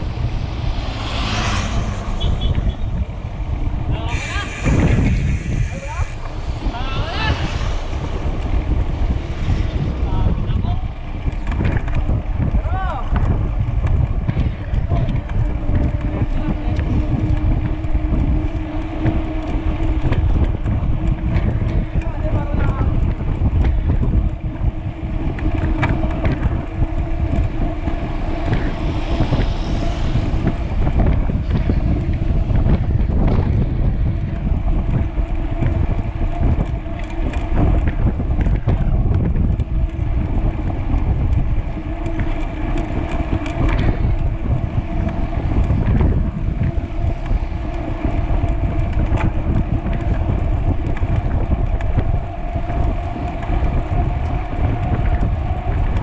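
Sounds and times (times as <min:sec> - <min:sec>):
motor scooter passing: 0:00.0 - 0:12.6, 0:13.5 - 0:55.8
wind buffeting microphone: 0:00.0 - 0:56.0.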